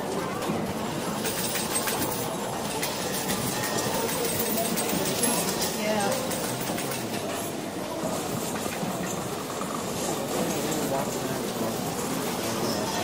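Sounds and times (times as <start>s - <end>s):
hubbub of people talking: 0.0s - 13.0s.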